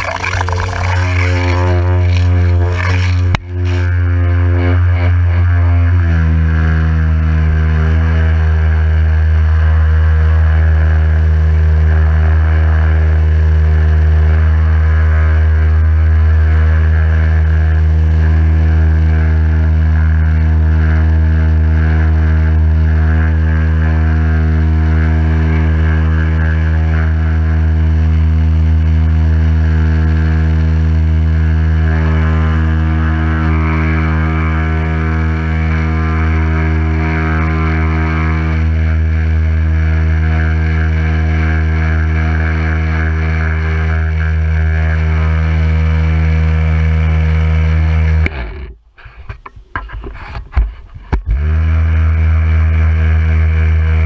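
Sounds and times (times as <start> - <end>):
pressure washer pump humming: 0.0 - 6.0.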